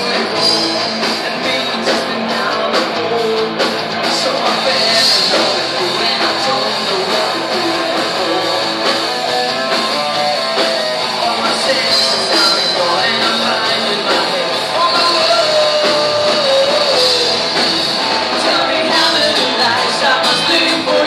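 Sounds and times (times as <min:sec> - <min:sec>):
distorted electric guitars: 0:00.0 - 0:21.0
drums: 0:00.0 - 0:21.0
heavy metal band playing: 0:00.0 - 0:21.0
lead vocal singing: 0:00.0 - 0:21.0.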